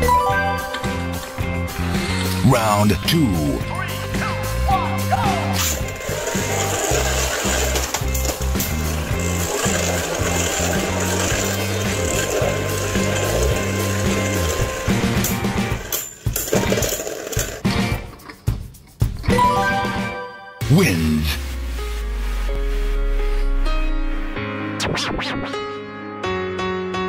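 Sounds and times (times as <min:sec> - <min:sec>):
background music with bass line: 0:00.0 - 0:26.6
spinning tops whirring and grinding: 0:05.4 - 0:17.8
spinning tops clattering together: 0:05.6 - 0:17.6.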